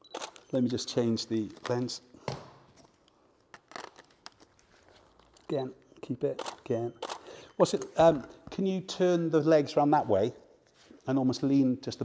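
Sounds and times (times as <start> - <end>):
faint clicks of camera lens: 6.4 - 7.8.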